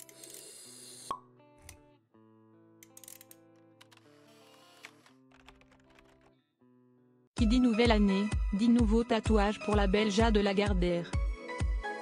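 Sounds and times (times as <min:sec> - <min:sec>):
background music of sustained notes: 0:05.0 - 0:12.0.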